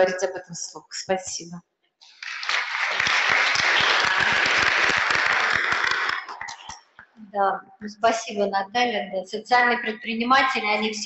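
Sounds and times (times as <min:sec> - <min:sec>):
audience applauding: 0:02.0 - 0:06.8.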